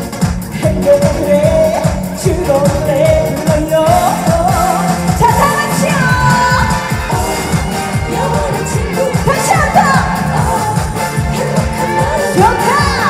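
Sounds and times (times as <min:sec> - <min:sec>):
backing music with dance beat: 0:00.0 - 0:13.0
woman singing into microphone: 0:00.9 - 0:13.0.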